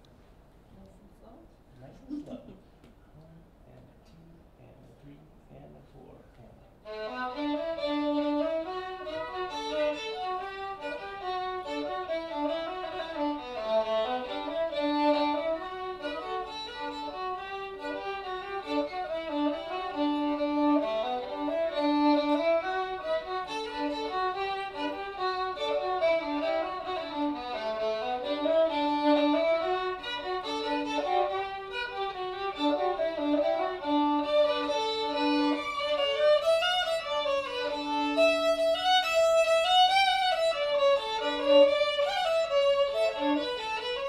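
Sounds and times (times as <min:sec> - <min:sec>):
fiddle duet playing lively tune: 0:06.8 - 0:44.0.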